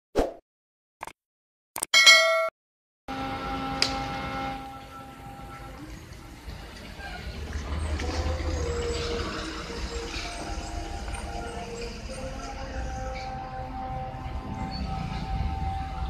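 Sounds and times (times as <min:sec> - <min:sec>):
bus engine rumble: 0:03.2 - 0:16.0.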